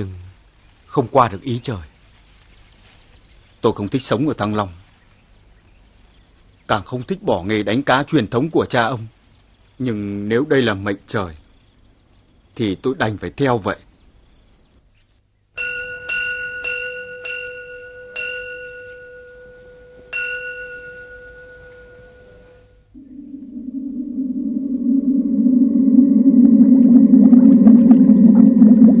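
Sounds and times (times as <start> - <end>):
small bell ringing: 15.6 - 22.8
low steady drone: 16.1 - 29.0.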